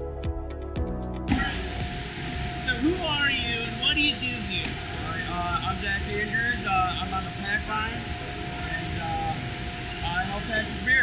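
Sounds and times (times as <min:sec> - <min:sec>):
machinery humming: 0:01.2 - 0:11.0.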